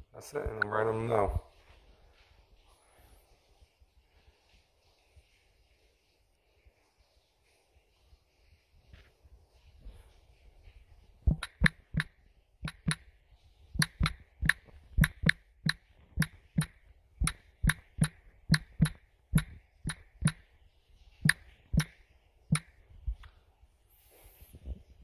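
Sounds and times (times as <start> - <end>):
sharp clicks or taps: 11.3 - 13.0, 13.8 - 20.4, 21.2 - 22.7.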